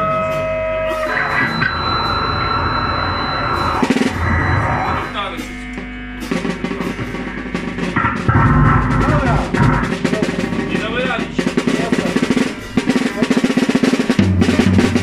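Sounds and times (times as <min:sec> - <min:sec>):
electric guitar sustained notes: 0:00.0 - 0:06.5
bass guitar: 0:00.0 - 0:13.2, 0:14.2 - 0:15.0
drum kit: 0:00.0 - 0:15.0.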